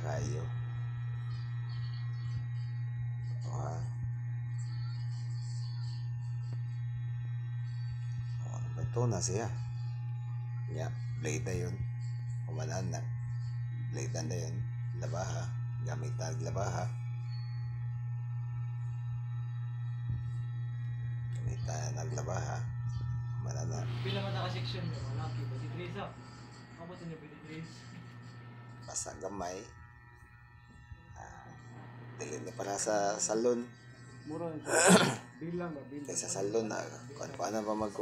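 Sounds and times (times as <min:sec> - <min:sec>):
electric hair clipper humming: 0:00.0 - 0:38.0.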